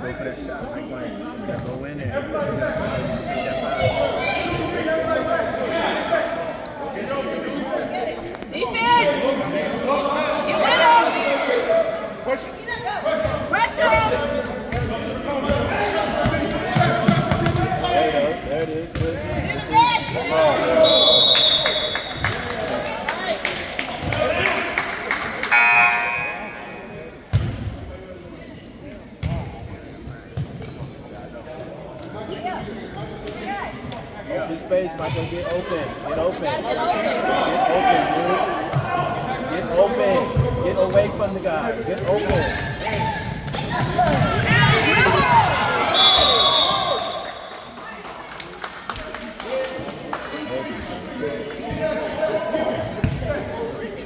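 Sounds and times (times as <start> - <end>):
sneakers squeaking: 3.7 - 9.3, 12.0 - 22.5, 25.5 - 33.1, 38.6 - 47.8, 52.6 - 54.0.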